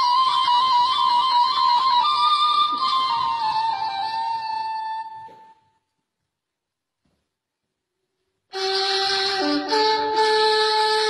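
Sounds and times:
reed flute long note: 0.0 - 5.8, 8.5 - 11.0.

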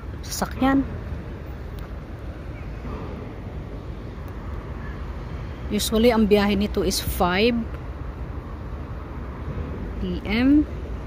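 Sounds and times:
distant harbour and city noise: 0.0 - 11.0.

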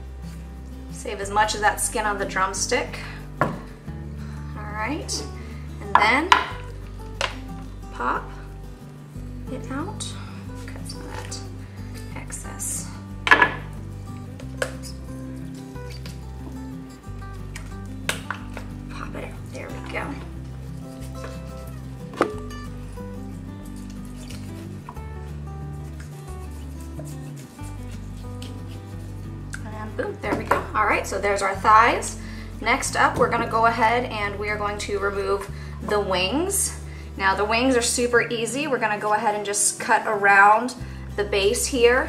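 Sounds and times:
background music with bass line: 0.0 - 38.3
knife cutting raw chicken: 23.7 - 24.7.

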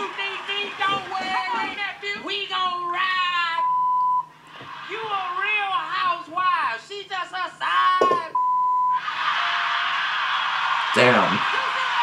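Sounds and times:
censor bleep: 3.6 - 4.3, 8.0 - 9.0.

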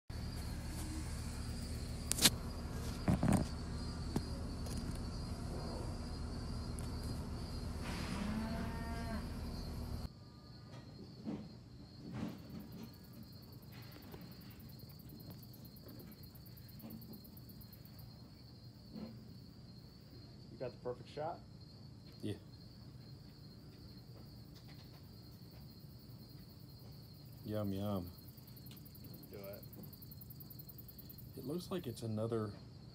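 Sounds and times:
low hum: 0.1 - 10.1
insects chirring: 0.1 - 32.9.

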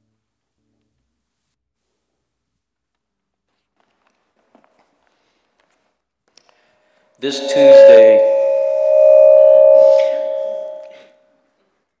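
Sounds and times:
brief voice-like sound: 7.2 - 10.9
loud steady ringing tone: 7.2 - 10.9.

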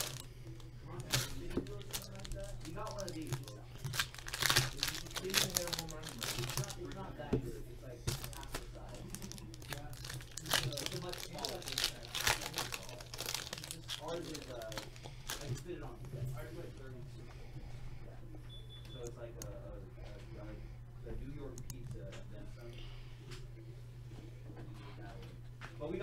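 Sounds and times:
foil wrappers crinkling and tearing: 0.0 - 7.2, 8.1 - 16.8.

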